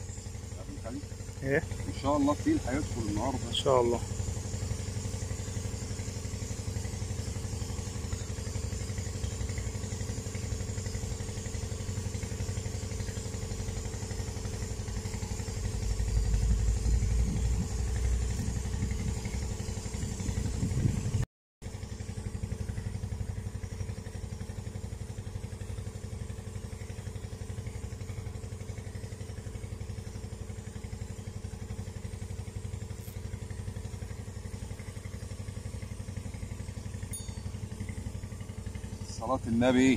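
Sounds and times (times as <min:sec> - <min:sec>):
engine running steadily: 0:00.0 - 0:39.9.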